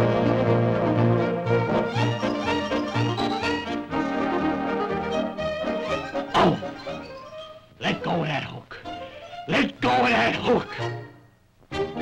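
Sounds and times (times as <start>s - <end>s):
orchestral cartoon music: 0.0s - 12.0s.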